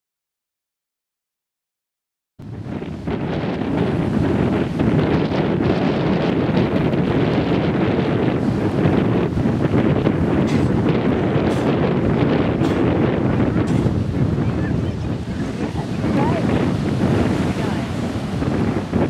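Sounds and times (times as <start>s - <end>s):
wind buffeting microphone: 2.4s - 19.0s
small waves breaking on beach: 2.5s - 19.0s.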